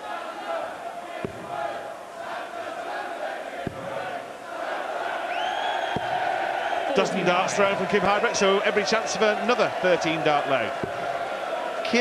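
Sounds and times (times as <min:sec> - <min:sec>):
crowd chanting and singing: 0:00.0 - 0:12.0.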